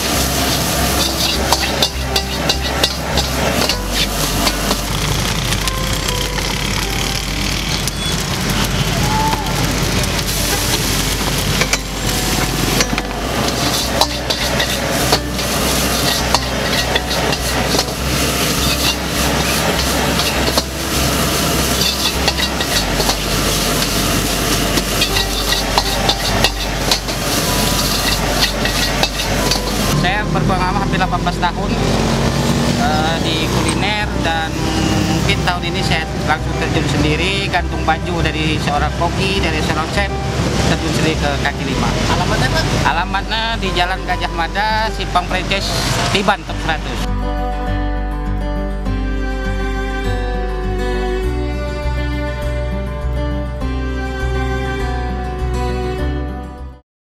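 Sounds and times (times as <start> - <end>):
metal ladle scraping a wok: 0.0 - 5.6, 10.1 - 30.0
rice sizzling in a wok: 0.0 - 30.0.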